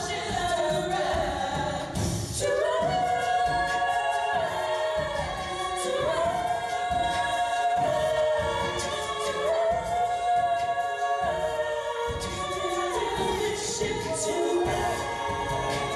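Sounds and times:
women singing a cappella: 0.0 - 15.9.

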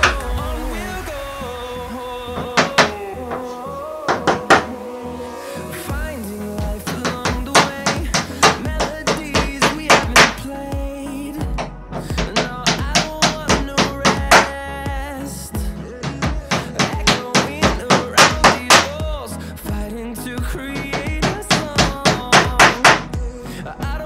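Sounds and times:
background music: 0.0 - 24.0
hammer striking small nails: 16.0 - 18.9.

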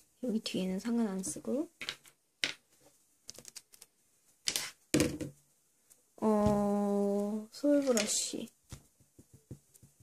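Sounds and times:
objects clacking on a tabletop: 1.2 - 5.4, 7.8 - 10.0.

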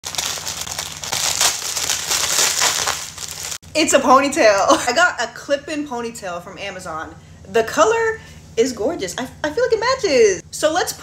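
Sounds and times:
plastic bag crinkling: 0.0 - 3.6.

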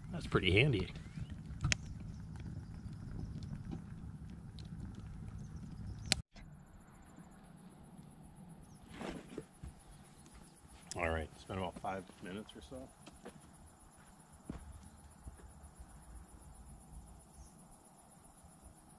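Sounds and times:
campfire crackling: 0.0 - 18.7
insect trill: 0.0 - 18.9.

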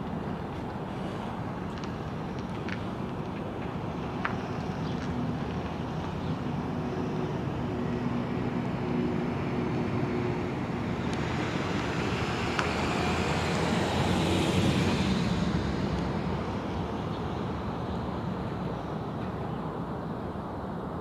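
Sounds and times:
engine and traffic noise: 0.0 - 21.0
vehicle passing: 6.6 - 19.1.

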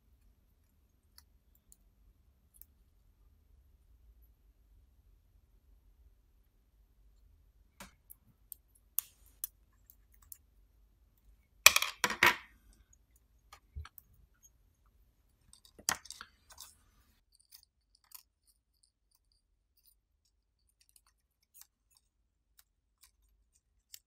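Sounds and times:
circuit board parts clattering: 11.7 - 12.6, 15.3 - 24.0.

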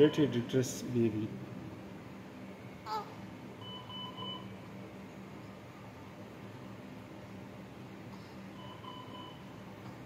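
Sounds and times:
patient monitor short beeps: 0.0 - 0.4, 3.6 - 4.6, 8.6 - 9.6
steady low hum: 0.0 - 10.0.

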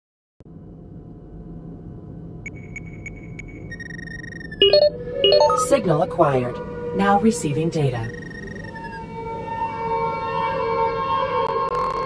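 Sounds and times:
low steady drone: 0.4 - 12.0
short high beeps: 2.5 - 5.7
stepped electronic bleeps: 2.5 - 5.8, 8.0 - 9.0
held high tone: 4.6 - 9.5.

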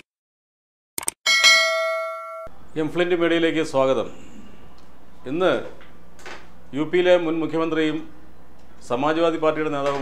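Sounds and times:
bell-like notification ding: 1.3 - 2.5.

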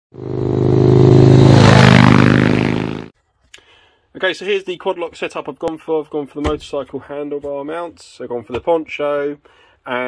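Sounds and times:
engine running: 0.1 - 3.1.

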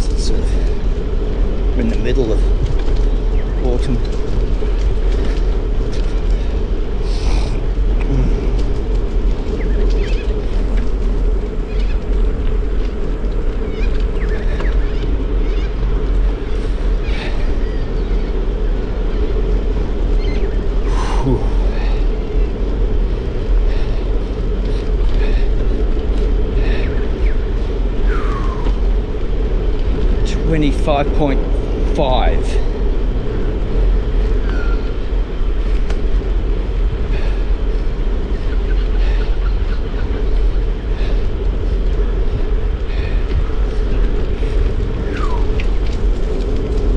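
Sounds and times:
bicycle rolling on pavement: 0.0 - 46.9
wind on microphone: 0.0 - 46.9.

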